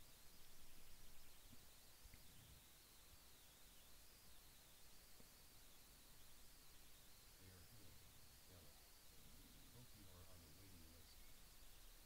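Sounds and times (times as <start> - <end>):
faint high-pitched whine: 0.0 - 12.0.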